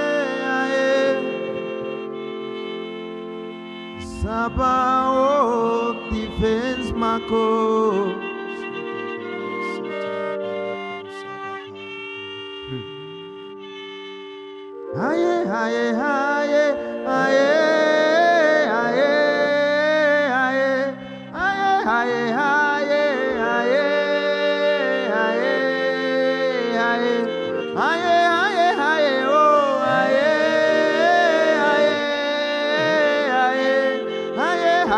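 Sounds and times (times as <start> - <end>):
slow worship music chords: 0.0 - 34.9
person singing wavering: 12.6 - 13.4, 14.9 - 34.9.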